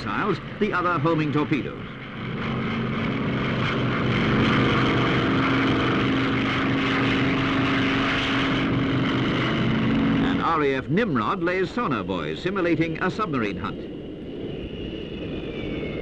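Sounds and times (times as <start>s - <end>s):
helicopter turbine and rotor: 0.0s - 16.0s.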